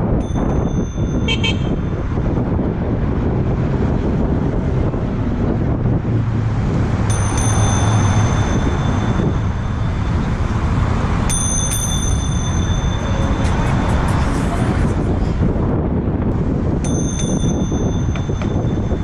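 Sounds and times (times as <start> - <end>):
bicycle bell ringing: 0.0 - 2.2, 7.0 - 10.4, 11.2 - 14.3, 16.8 - 19.0
bicycle rolling and wind noise: 0.0 - 19.0.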